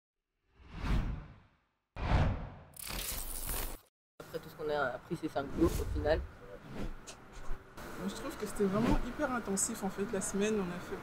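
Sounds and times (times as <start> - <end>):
whoosh: 0.6 - 2.7.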